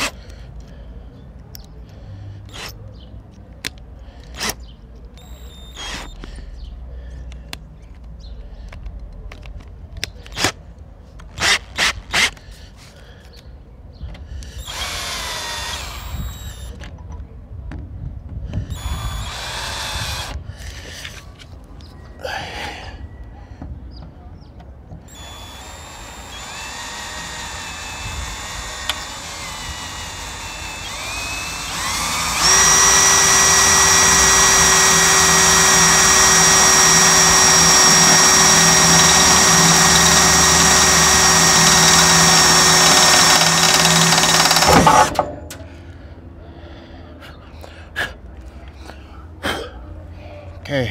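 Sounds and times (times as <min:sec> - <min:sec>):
power drill boring into metal: 0:05.2 - 0:06.2, 0:14.6 - 0:16.8, 0:18.7 - 0:20.4, 0:25.1 - 0:45.3.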